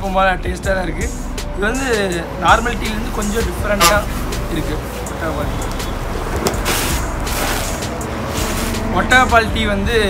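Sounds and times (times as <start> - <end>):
person speaking: 2.2 - 5.7.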